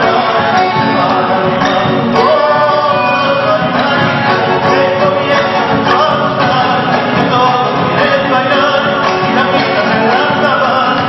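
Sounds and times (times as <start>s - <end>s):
acoustic guitars: 0.0s - 11.0s
bandoneon: 0.0s - 11.0s
bass drum: 0.0s - 11.0s
voices singing in harmony: 0.0s - 11.0s.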